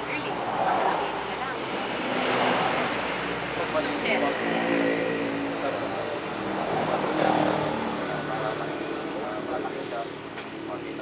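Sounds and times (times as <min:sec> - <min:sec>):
people talking: 0:00.0 - 0:02.9, 0:03.6 - 0:05.0, 0:05.6 - 0:11.0
steady background noise: 0:00.0 - 0:11.0.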